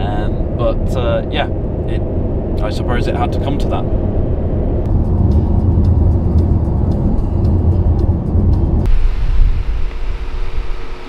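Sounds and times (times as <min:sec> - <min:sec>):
car road rumble: 0:00.0 - 0:11.0.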